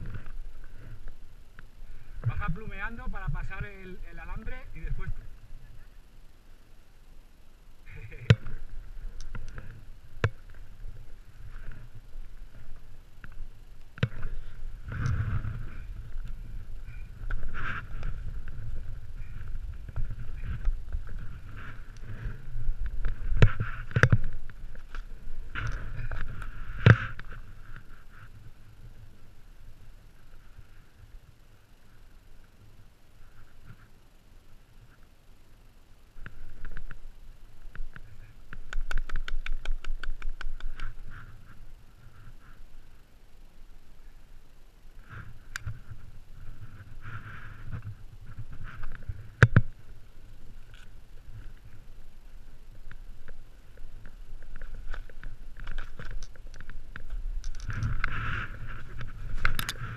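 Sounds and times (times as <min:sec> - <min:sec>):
wind rumbling on microphone: 0:07.9 - 0:29.3, 0:45.1 - 0:59.9
snowboard sliding over snow: 0:14.0 - 0:28.6.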